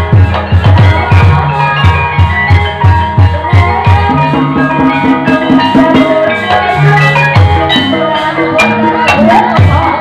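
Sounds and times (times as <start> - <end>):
drum strokes: 0.0 - 10.0
tuned percussion melody: 0.0 - 10.0.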